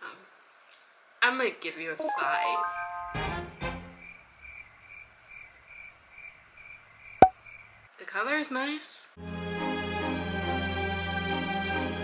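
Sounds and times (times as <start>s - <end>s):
cricket chirps: 4.0s - 7.9s.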